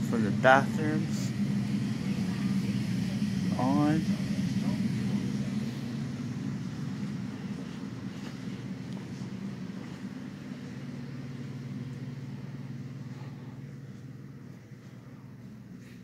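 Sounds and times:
low mechanical hum: 0.0s - 16.0s.

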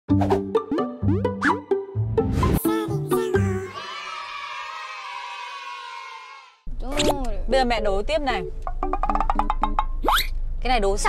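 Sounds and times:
bouncy cartoon jingle: 0.2s - 3.7s
upward pitch slide effects: 0.2s - 3.8s.

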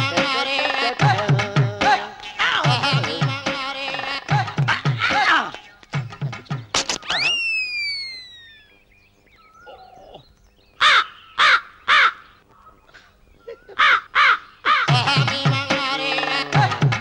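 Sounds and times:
high tone sliding down: 7.0s - 8.8s
crow cawing: 10.8s - 12.7s, 13.6s - 14.9s.

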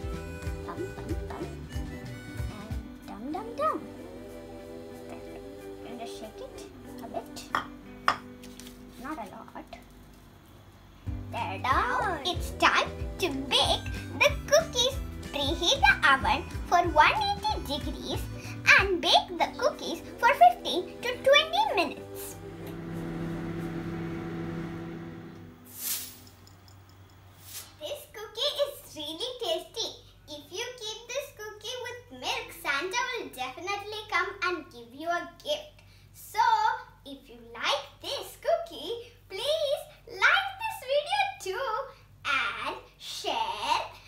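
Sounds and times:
children's music with voice: 0.0s - 8.0s, 11.1s - 22.6s
background music with held notes: 0.0s - 9.0s, 11.1s - 25.6s
ceramic bowls clinking: 7.5s - 8.3s
kitchen appliance humming: 17.4s - 25.7s
short hissing swishes: 25.7s - 26.3s, 27.4s - 27.8s.

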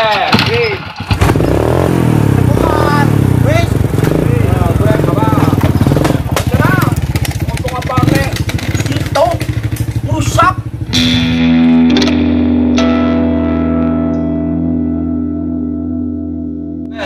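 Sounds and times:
small motorcycle engine: 0.9s - 10.9s
voices: 2.4s - 10.8s.

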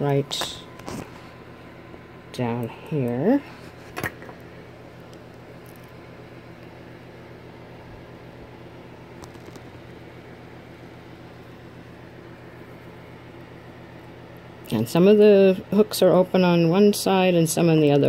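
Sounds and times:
electric fan running: 0.0s - 18.0s.

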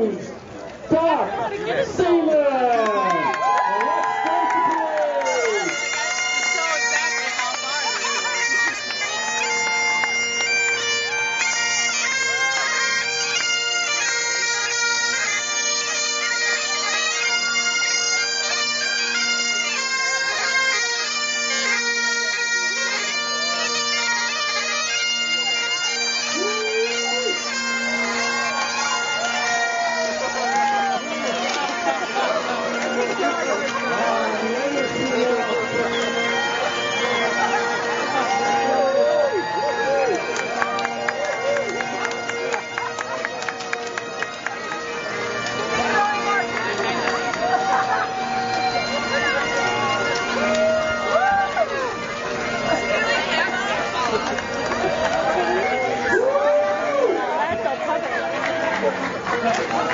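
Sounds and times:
onlookers' voices: 0.0s - 59.9s
bagpipes playing: 1.8s - 59.9s.

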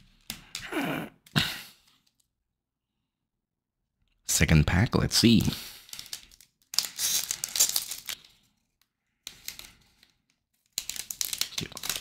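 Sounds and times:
foil wrapper tearing and crinkling: 5.9s - 8.2s, 10.6s - 12.0s.

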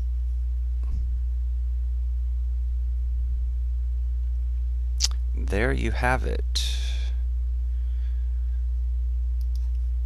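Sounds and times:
mains hum: 0.0s - 10.0s
faint click: 9.4s - 9.8s.

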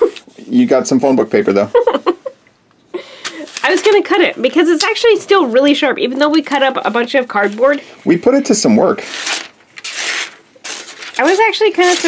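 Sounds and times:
knife slicing paper: 9.0s - 12.0s.

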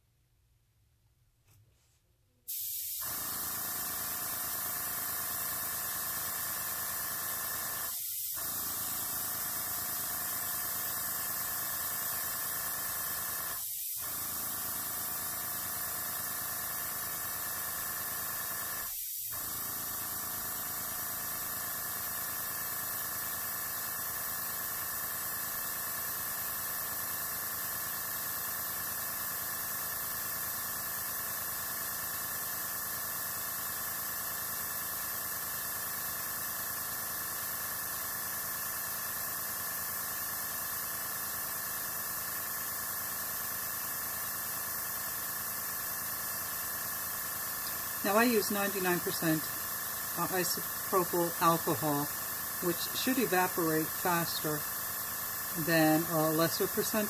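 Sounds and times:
airbrush hissing: 2.5s - 57.0s.

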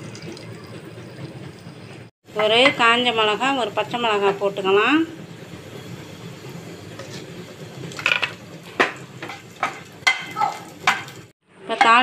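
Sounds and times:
oil sizzling in frying pan: 1.6s - 12.0s.

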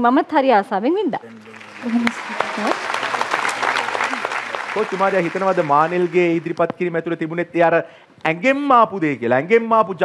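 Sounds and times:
audience applauding: 1.2s - 6.7s.

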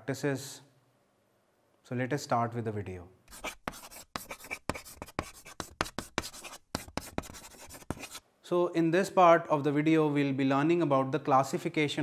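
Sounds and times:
chalk scratching on chalkboard: 3.3s - 8.2s.

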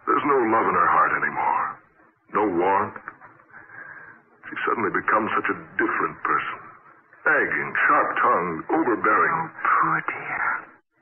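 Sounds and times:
radio drama dialogue: 0.0s - 10.8s.

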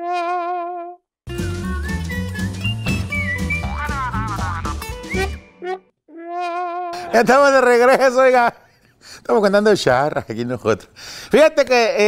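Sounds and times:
lively full-band tune: 1.3s - 5.5s.

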